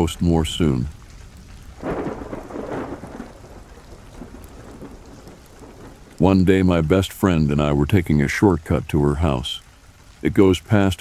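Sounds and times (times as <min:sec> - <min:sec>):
rain falling: 0:00.0 - 0:11.0
thunder rolling: 0:00.8 - 0:07.0.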